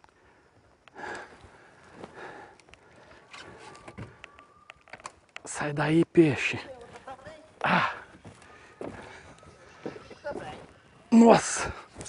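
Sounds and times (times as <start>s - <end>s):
person breathing hard in puffs: 0.2s - 3.9s.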